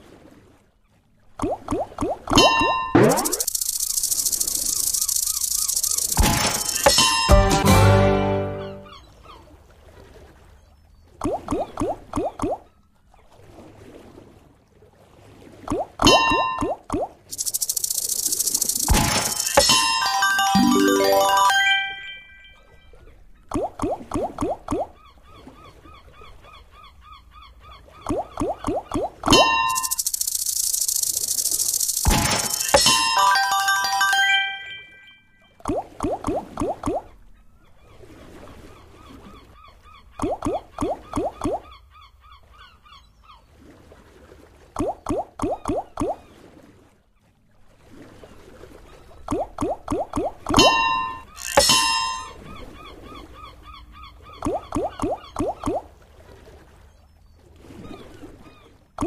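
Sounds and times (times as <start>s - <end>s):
hissing burst with chime tones: 3.1s - 7.9s, 17.3s - 22.6s, 29.4s - 35.2s
reel stopping clicks: 3.2s - 7.2s, 17.3s - 19.7s, 29.7s - 32.9s
slot game background music: 6.2s - 8.8s, 18.9s - 22.6s, 32.0s - 35.2s.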